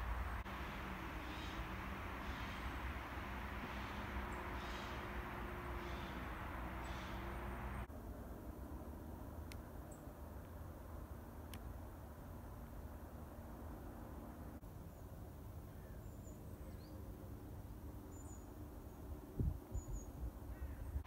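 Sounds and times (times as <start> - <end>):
faint bird chirps: 0.0 - 2.9, 3.7 - 7.9
steady low rumble: 0.0 - 9.3.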